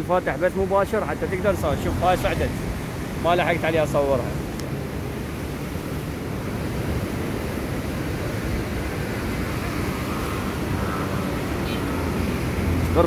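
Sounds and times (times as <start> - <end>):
water rushing over weir: 0.0 - 13.0.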